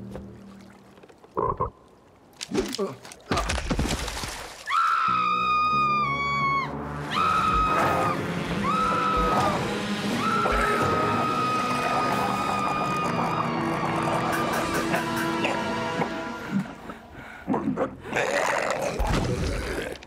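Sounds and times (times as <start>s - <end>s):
high-pitched screaming: 4.7s - 14.9s
music: 5.0s - 18.1s.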